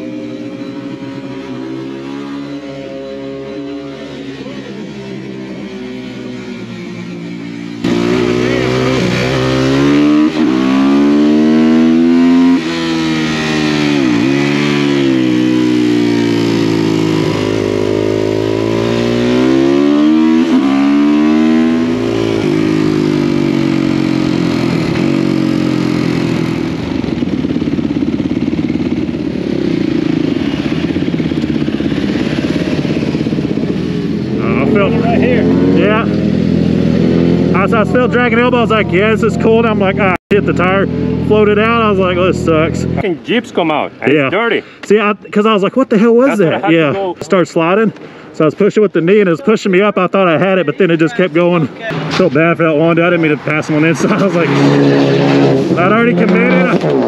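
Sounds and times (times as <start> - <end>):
motorcycle engine revving: 0.0 - 44.4, 50.2 - 57.0
voices: 34.3 - 36.3, 37.3 - 56.9.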